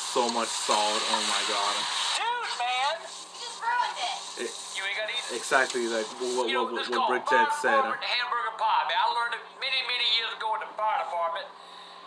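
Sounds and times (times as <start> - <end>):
steady low hum: 0.0 - 12.0
man talking: 0.1 - 1.9, 4.4 - 4.6, 5.2 - 8.1.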